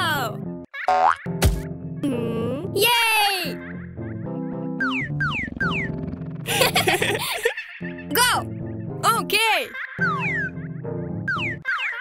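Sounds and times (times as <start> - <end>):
children's background music: 0.0 - 12.0.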